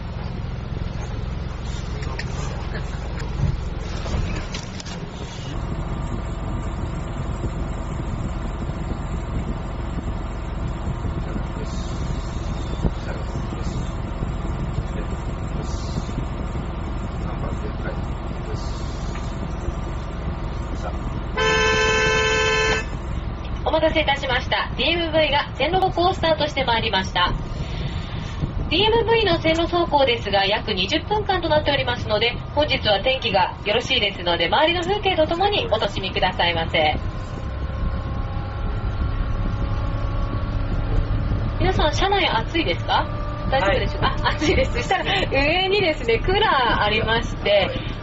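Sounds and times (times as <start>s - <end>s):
faint steady whine: 0.0s - 48.0s
train rumbling on rails: 0.0s - 48.0s
vehicle engine running: 0.0s - 48.0s
horn blast: 21.3s - 23.0s.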